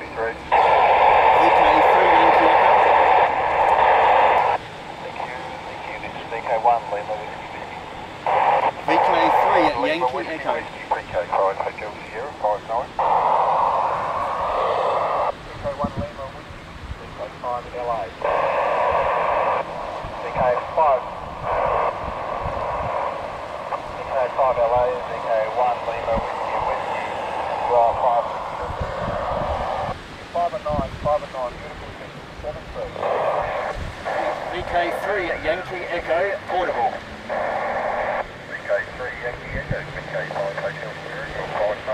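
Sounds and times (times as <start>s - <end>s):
radio hiss: 0.0s - 41.9s
radio voices: 0.0s - 41.9s.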